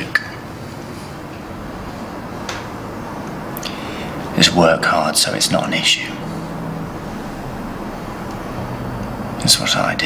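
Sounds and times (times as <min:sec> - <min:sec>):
low background hum: 0:00.0 - 0:10.0
held low tones: 0:00.6 - 0:10.0.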